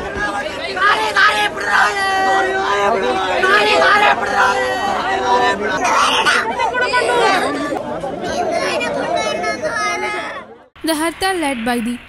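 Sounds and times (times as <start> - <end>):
women talking over one another: 10.8 - 12.0.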